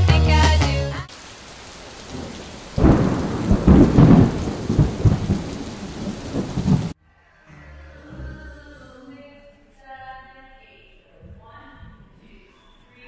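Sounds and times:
rain hiss: 1.1s - 7.0s
rolling thunder: 1.5s - 7.0s.

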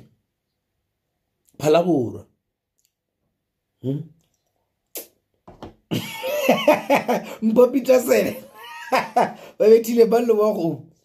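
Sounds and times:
drink can set down on table: 5.4s - 5.8s.

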